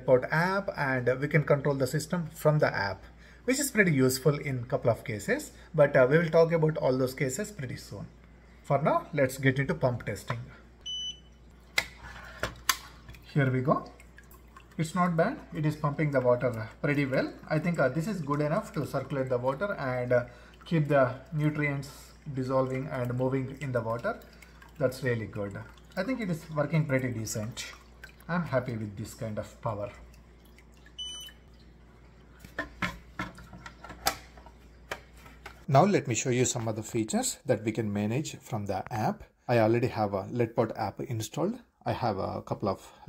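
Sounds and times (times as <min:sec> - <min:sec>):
high electronic beep: 0:31.0 - 0:31.4.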